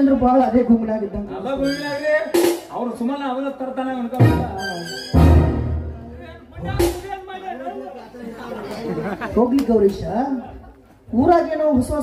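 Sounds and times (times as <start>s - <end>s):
voices talking over pa: 4.1s - 5.3s.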